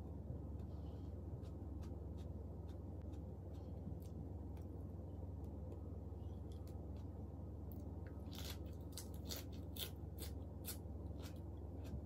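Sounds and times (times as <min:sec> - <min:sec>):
crisp lettuce chewing crunches: 0:06.5 - 0:12.0.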